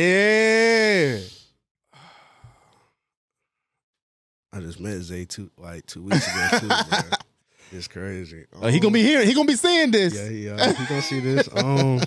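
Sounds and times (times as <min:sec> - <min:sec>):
man's breathy sigh: 0:01.9 - 0:02.9.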